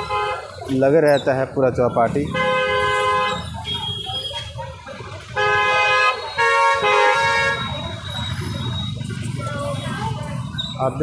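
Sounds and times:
low traffic rumble: 0.0 - 11.0
vehicle horn honking: 2.3 - 4.5, 5.4 - 7.8.

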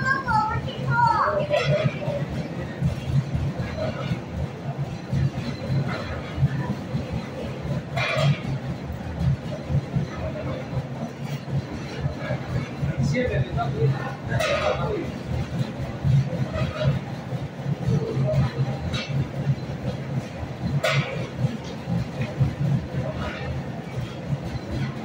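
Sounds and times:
kiddie ride motor rumbling: 0.0 - 25.0
voices: 0.0 - 25.0.

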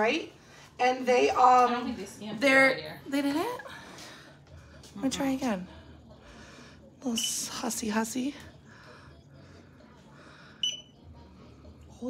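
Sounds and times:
high-pitched electronic beep: 10.6 - 10.9.

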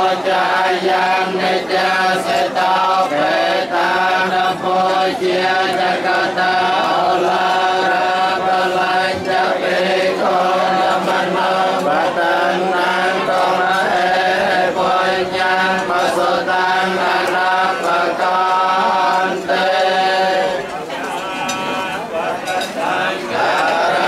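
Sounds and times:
monks chanting in unison: 0.0 - 24.0.

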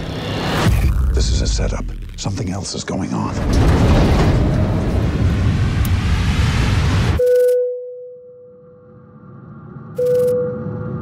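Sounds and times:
loud rumbling noise swell: 3.2 - 7.2.

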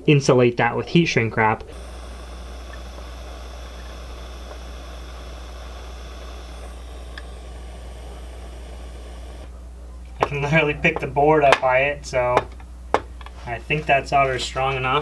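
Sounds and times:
low hum: 1.5 - 11.0
steady hiss: 1.6 - 9.5.

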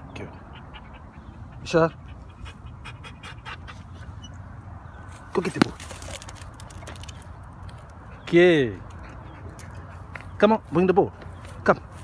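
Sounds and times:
dog panting: 0.2 - 4.3, 8.0 - 10.4.

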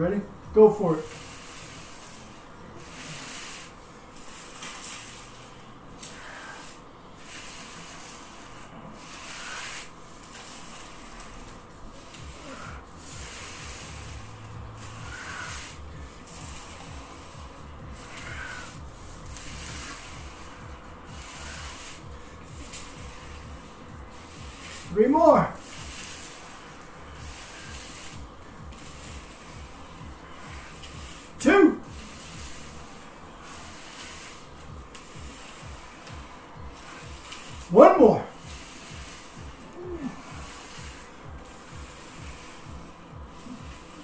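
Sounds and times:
paper plates scraping on floor: 2.9 - 44.0.

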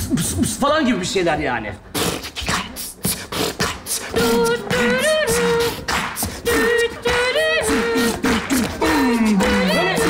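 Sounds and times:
man beatboxing: 0.0 - 10.0.

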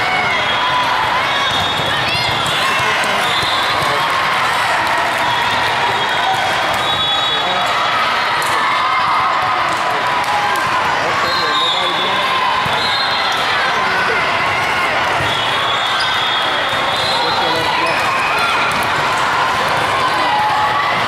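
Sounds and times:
many voices talking and calling: 0.0 - 21.0.

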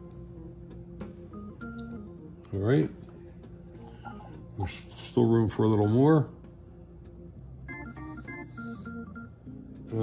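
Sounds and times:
organ music: 0.0 - 3.8, 4.4 - 10.0.

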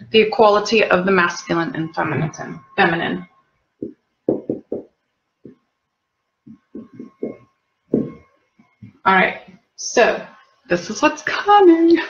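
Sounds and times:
marker knocking on whiteboard: 3.8 - 5.6, 6.5 - 8.2.

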